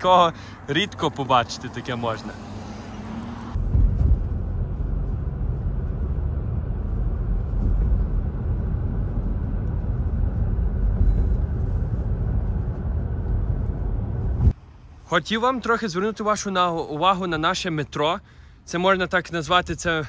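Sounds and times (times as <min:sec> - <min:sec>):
car engine rumble: 0:00.0 - 0:15.1
road and tyre noise: 0:00.0 - 0:20.0.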